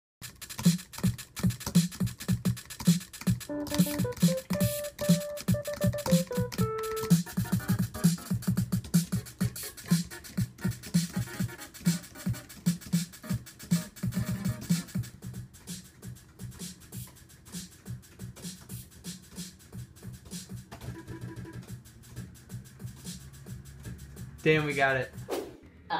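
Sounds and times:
hi-hat ticks: 0.2 - 25.3
melody of held notes: 3.5 - 8.3.

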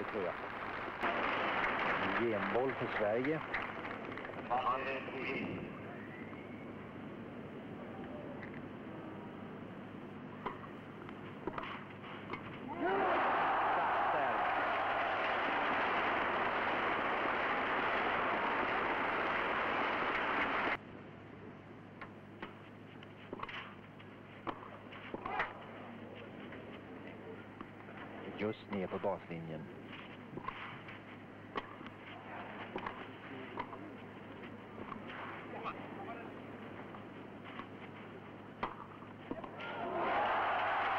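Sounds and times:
crowd noise in grandstand: 0.0 - 9.7, 12.4 - 20.8, 24.7 - 40.9
low steady hum: 0.0 - 40.9.

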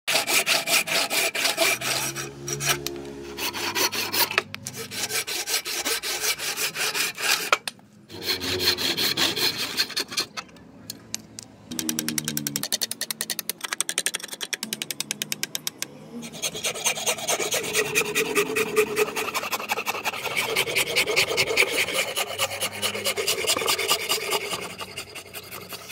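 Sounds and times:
hand saw cutting wood: 0.1 - 10.4, 16.2 - 25.9.

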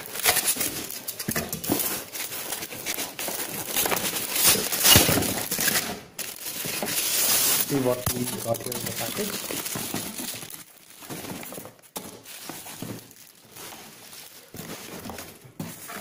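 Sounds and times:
cardboard and paper rustling: 0.0 - 16.0.

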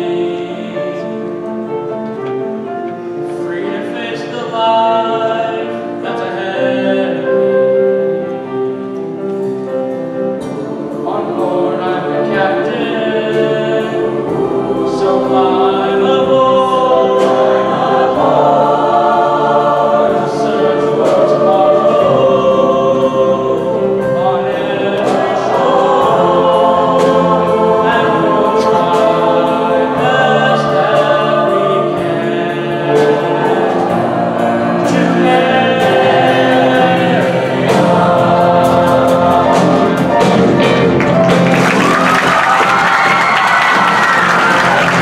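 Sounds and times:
choir singing in harmony: 0.0 - 45.0
piano and band accompaniment: 0.0 - 45.0.

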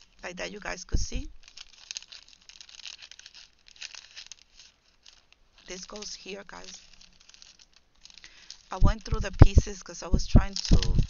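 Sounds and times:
paper pieces rustling: 0.0 - 11.0
plastic bag crinkling: 0.0 - 11.0.

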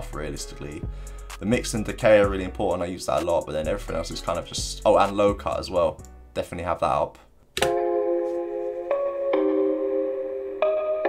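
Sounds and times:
reverberant melody with sustained chords: 7.7 - 11.0.

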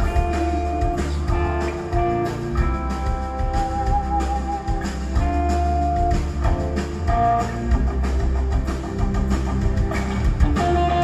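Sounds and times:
bass and drums: 0.0 - 11.0
electric guitar long notes: 10.4 - 11.0.

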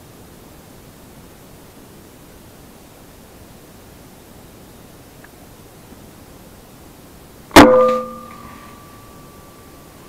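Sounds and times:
ringing tone: 7.6 - 9.9.

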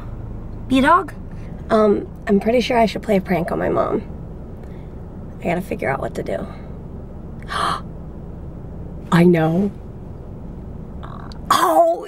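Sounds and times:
woman gasping: 7.4 - 7.9.

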